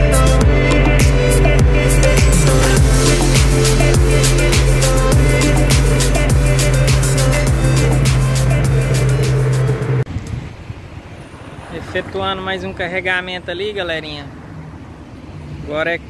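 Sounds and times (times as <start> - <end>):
electronic music with heavy bass: 0.0 - 10.1
vehicle rumble: 0.0 - 16.0.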